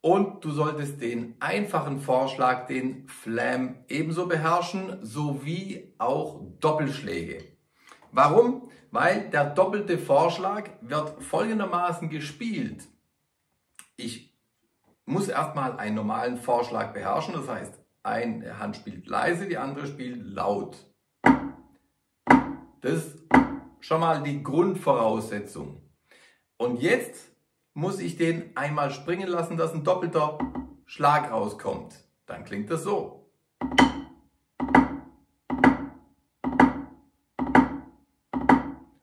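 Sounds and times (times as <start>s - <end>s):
drumsticks on practice pad: 21.2s - 21.6s, 22.3s - 22.7s, 23.3s - 23.8s, 33.6s - 38.9s.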